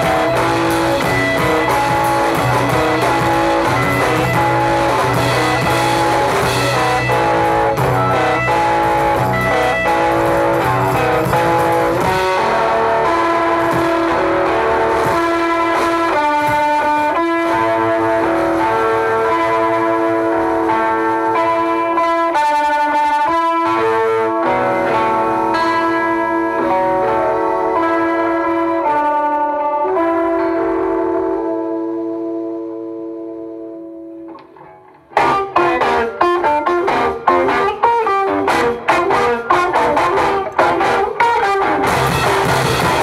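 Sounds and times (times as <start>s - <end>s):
drums crashing: 0.0s - 22.1s, 35.0s - 43.0s
distorted electric guitar chords: 0.0s - 43.0s.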